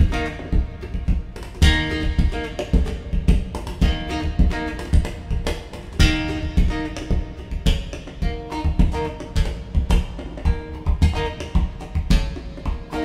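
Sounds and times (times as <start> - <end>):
acoustic guitar picking and strumming: 0.0 - 13.0
thumps on guitar body: 0.0 - 13.0.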